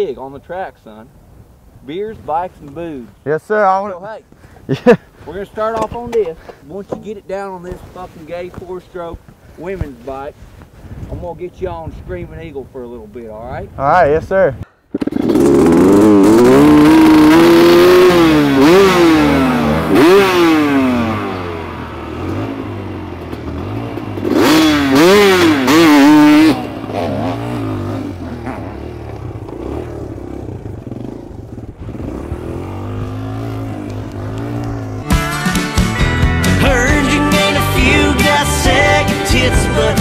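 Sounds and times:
dirt bike engines revving: 0.0s - 13.5s, 14.2s - 40.0s.

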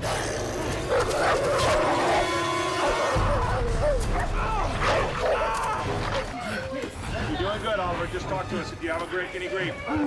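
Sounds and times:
dogs barking and yelping: 0.8s - 2.3s.

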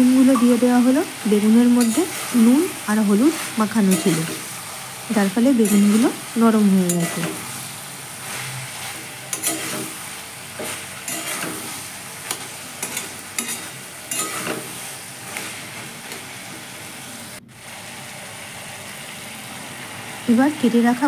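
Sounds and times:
vegetables sizzling in oil: 0.0s - 21.0s
metal spoon scraping pan: 1.8s - 2.4s, 3.4s - 4.5s, 6.9s - 7.5s, 8.2s - 16.6s.

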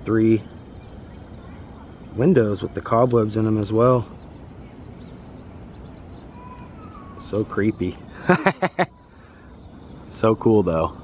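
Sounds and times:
faint high bird chirps: 0.0s - 11.0s
steady low background noise: 0.0s - 11.0s.

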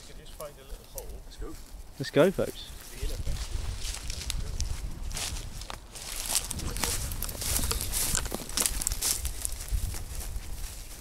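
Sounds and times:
footsteps through dry grass: 0.0s - 11.0s.

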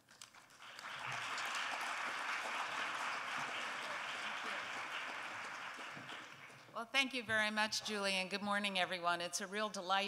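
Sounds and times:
audience applauding: 0.2s - 6.7s.

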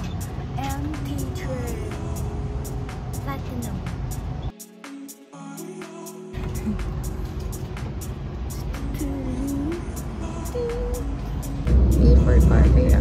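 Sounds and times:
electric train rumbling: 0.0s - 4.5s, 6.4s - 13.0s.

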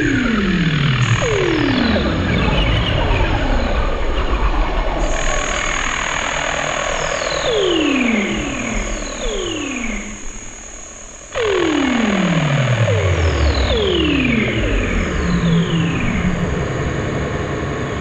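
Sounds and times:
glitchy electronic noise music: 0.1s - 3.2s, 5.1s - 17.2s.

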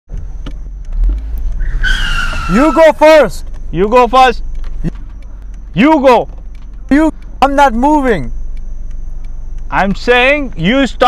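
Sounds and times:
brake squeal: 0.1s - 11.0s.

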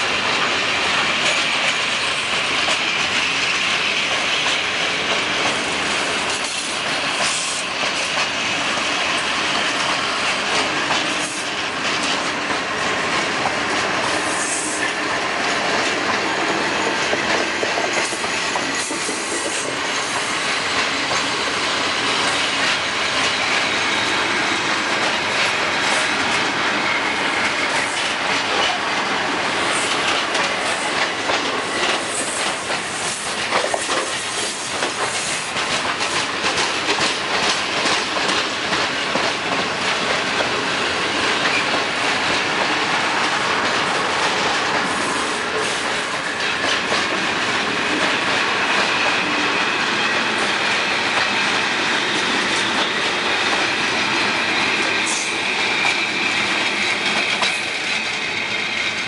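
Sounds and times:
freight train wheels clattering: 0.0s - 59.0s.

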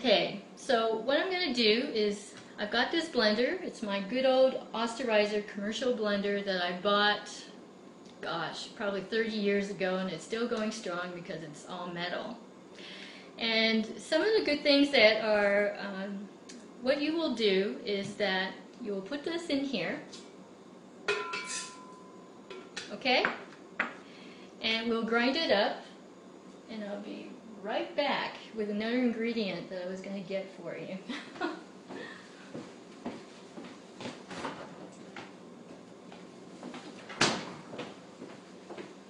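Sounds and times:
glass bowl clinking on metal jar: 21.1s - 22.1s.

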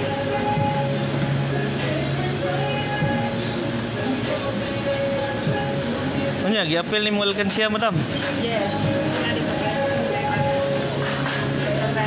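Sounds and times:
background music: 0.0s - 12.0s
store hubbub: 0.0s - 12.0s.

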